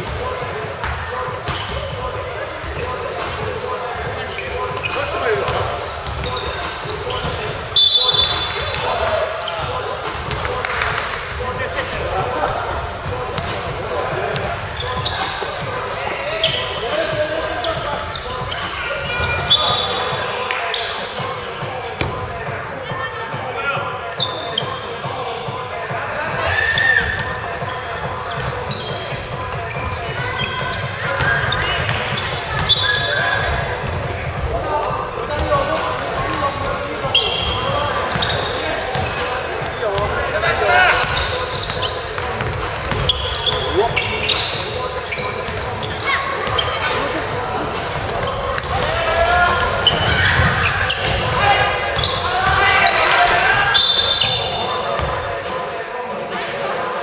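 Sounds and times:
players calling out: 0.0s - 57.0s.

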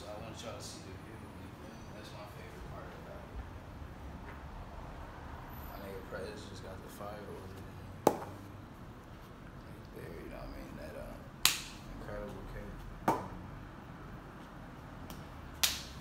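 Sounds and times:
sharp smacks in small room: 11.4s - 11.9s, 15.0s - 16.0s.

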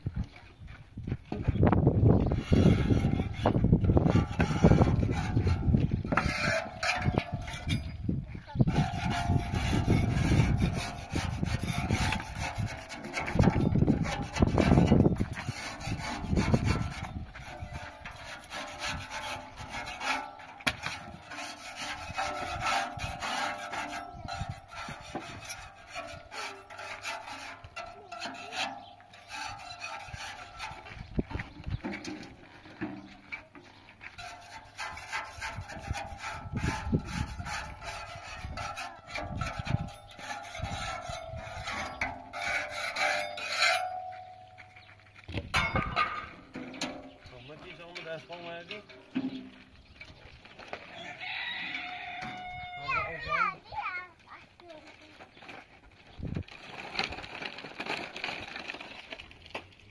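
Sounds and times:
tool scraping metal wheelbarrow: 1.3s - 59.9s.

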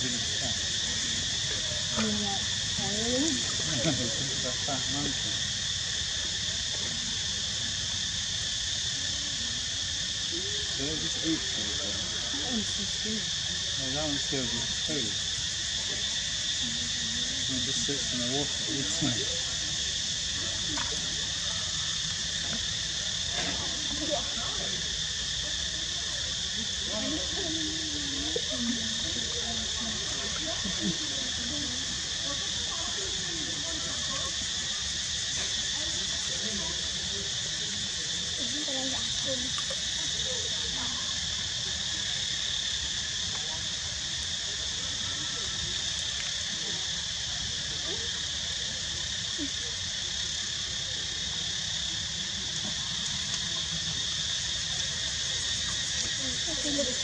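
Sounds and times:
faint voices: 0.0s - 57.0s
insect chorus drone: 0.0s - 57.0s.

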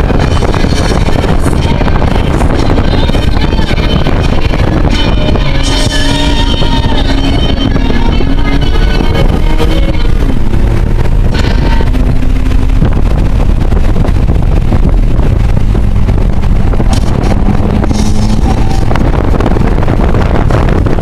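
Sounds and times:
loud car engine: 0.0s - 21.0s
road rumble: 0.0s - 21.0s
wind noise on microphone: 0.0s - 21.0s.

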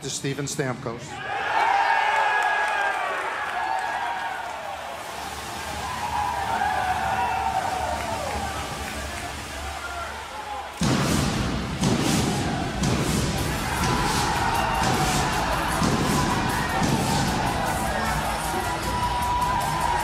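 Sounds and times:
players cheering and shouting: 1.1s - 20.0s
pyrotechnic bursts: 10.7s - 20.0s.

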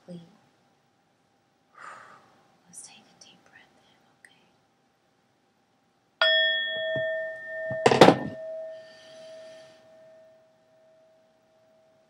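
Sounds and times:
struck metal bell tone: 6.2s - 12.0s.

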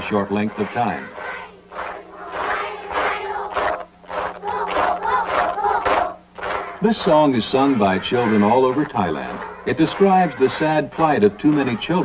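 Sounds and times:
children singing in unison: 0.0s - 12.0s.

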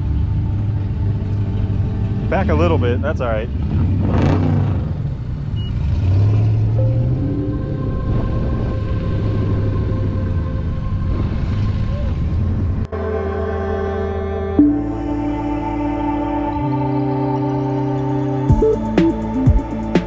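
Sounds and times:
ambient music with held tones: 0.0s - 4.0s, 6.7s - 20.0s.

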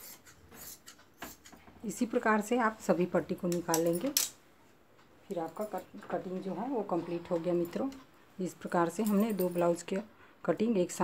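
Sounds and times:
woman speaking: 1.8s - 4.3s, 5.2s - 11.0s.

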